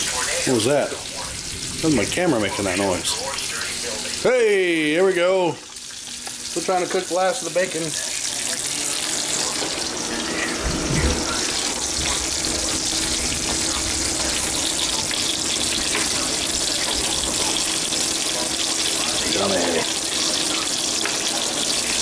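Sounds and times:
bacon sizzling in a skillet: 0:00.0 - 0:22.0.

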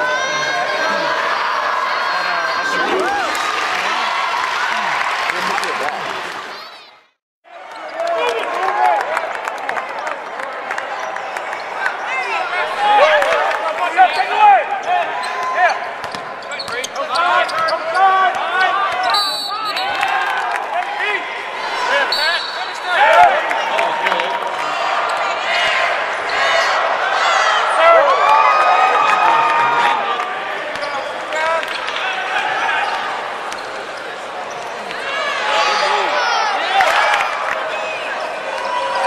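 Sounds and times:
spectators shouting: 0:00.0 - 0:07.0, 0:17.0 - 0:39.0.

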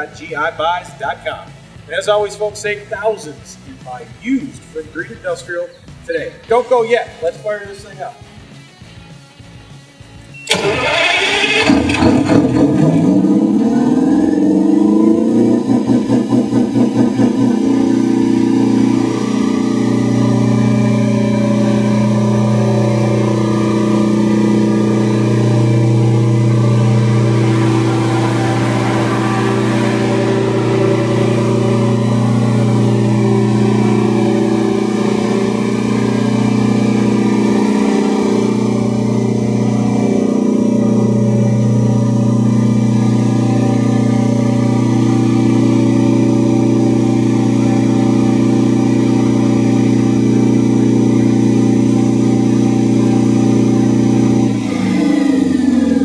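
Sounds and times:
diesel generator starting and running: 0:00.0 - 0:56.0.

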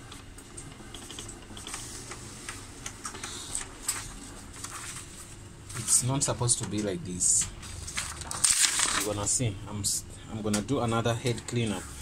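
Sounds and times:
print mechanism ticks and clicks: 0:00.0 - 0:04.0, 0:06.2 - 0:09.4
inkjet printer printing: 0:00.0 - 0:09.4.

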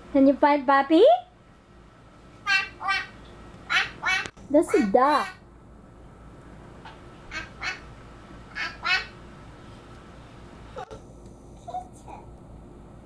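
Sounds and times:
person imitating a duck quacking: 0:02.5 - 0:05.4, 0:07.3 - 0:07.9, 0:08.5 - 0:09.2.

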